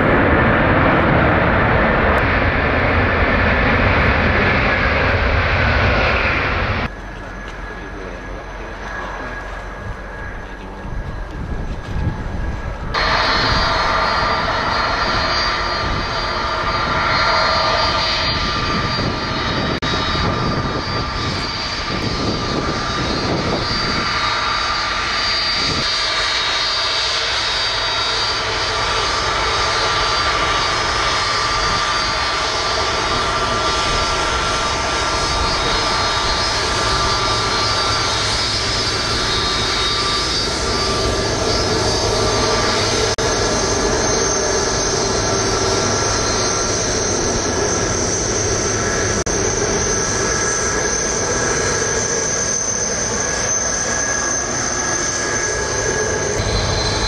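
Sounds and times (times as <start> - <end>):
jet engines whining: 0.0 - 57.0.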